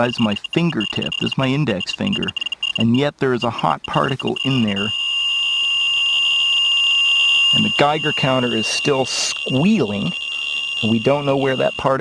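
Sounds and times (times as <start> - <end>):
geiger counter high-pitched squeal: 0.0 - 12.0.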